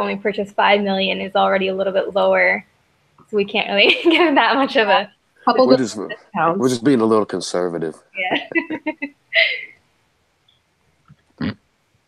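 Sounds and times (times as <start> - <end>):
person saying yeah: 5.5 - 8.9.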